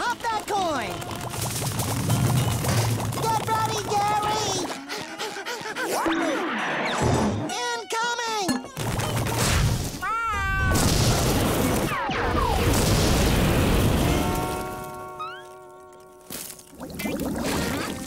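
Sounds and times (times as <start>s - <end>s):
warbling cartoon voice: 3.2s - 6.6s, 17.0s - 18.0s.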